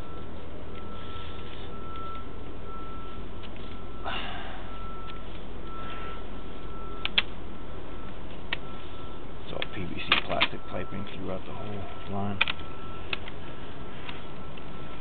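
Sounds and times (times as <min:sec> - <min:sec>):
high beeping tone: 0:00.0 - 0:15.0
low machine hum: 0:00.0 - 0:15.0
sharp clicks: 0:07.0 - 0:07.3, 0:12.3 - 0:13.4.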